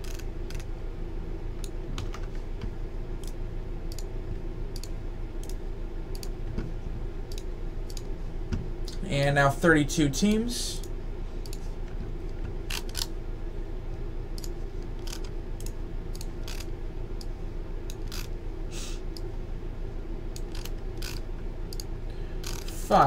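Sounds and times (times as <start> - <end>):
low electrical hum: 0.0 - 23.0.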